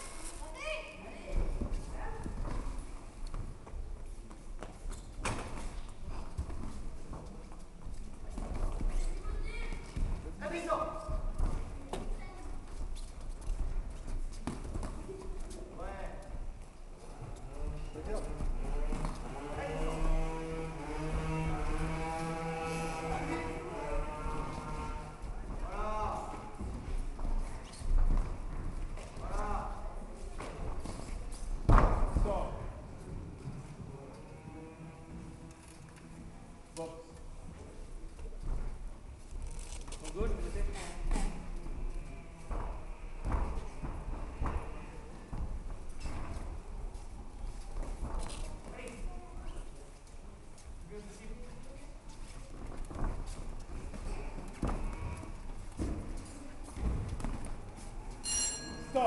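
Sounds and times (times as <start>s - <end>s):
low rumble of hall: 0.0s - 59.0s.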